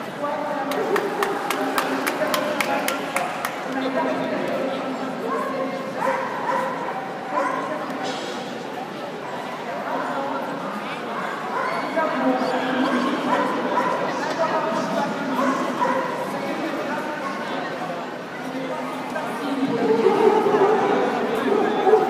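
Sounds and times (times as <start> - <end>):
people chattering in a hall: 0.0 - 22.0.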